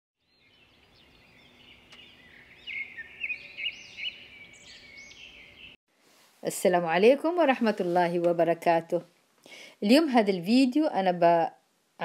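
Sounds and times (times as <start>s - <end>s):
birds chirping and whistling: 0.2s - 5.8s.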